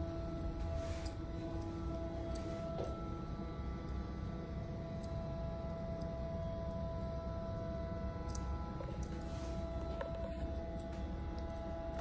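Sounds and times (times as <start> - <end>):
electric lift motor humming: 0.0 - 12.0
whining tones: 0.0 - 12.0.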